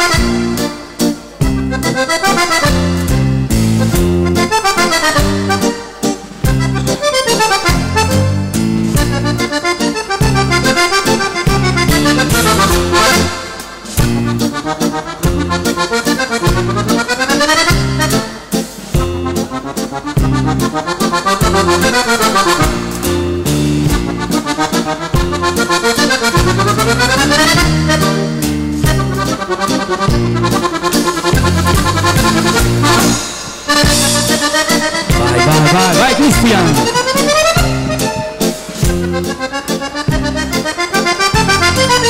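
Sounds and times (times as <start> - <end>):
accordion playing dance tune: 1.6 - 11.5, 34.4 - 42.0
button accordion dance tune: 34.9 - 37.8
band playing: 35.1 - 37.6.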